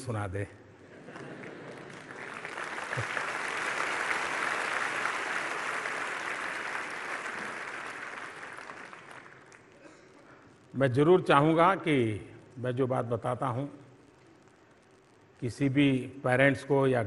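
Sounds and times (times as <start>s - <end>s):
audience applauding: 0.9s - 9.8s.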